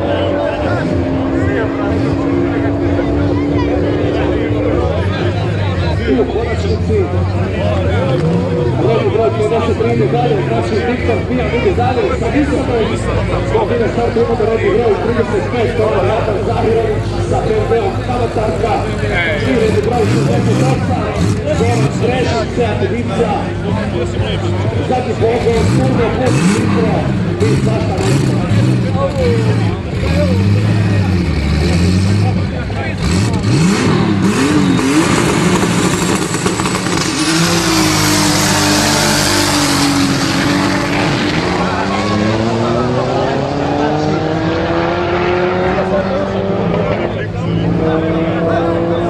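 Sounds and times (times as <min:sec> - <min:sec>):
engines accelerating hard: 0:00.0 - 0:49.0
loud rush of noise: 0:00.0 - 0:49.0
race car engines revving: 0:00.0 - 0:49.0.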